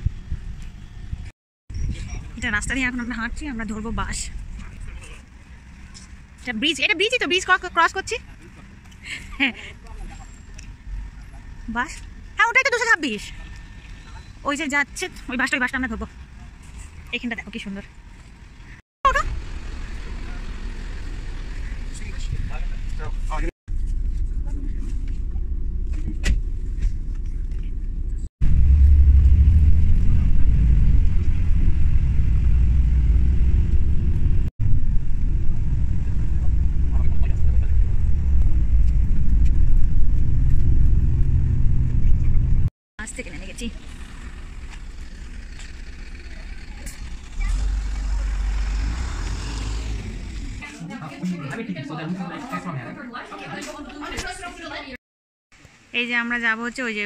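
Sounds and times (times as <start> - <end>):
bus engine and tyres rumble: 0.0 - 55.0.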